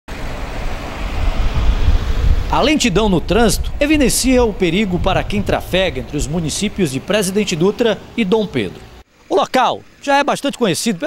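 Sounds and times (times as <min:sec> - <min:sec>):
cars driving past: 0:00.1 - 0:09.1.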